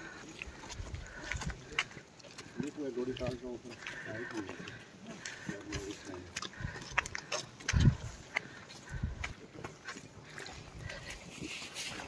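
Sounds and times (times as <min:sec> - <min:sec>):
footsteps: 0:00.0 - 0:12.0.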